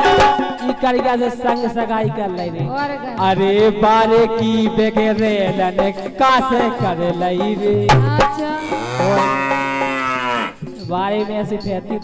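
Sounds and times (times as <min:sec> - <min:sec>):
man singing through microphone: 0:00.0 - 0:09.4, 0:10.8 - 0:12.0.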